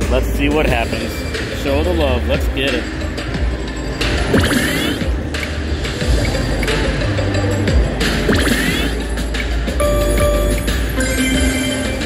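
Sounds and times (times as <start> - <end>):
slot machine electronic music: 0.0 - 12.0.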